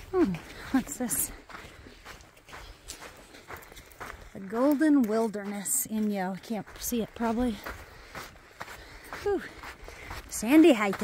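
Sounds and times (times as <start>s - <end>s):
footsteps on sand: 0.0s - 11.0s.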